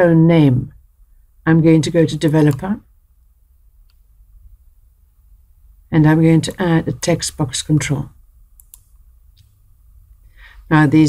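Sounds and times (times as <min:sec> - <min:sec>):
computer mouse clicks: 0:08.6 - 0:09.6.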